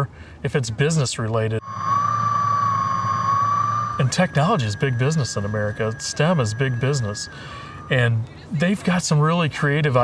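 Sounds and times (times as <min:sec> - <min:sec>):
electric thrusters whining: 0:01.6 - 0:08.0
low hum: 0:01.6 - 0:08.4.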